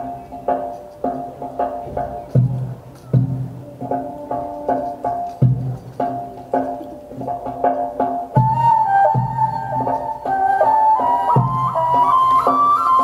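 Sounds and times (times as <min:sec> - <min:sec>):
deep drum strokes: 0:00.0 - 0:10.2
flute holding long notes: 0:08.4 - 0:13.0.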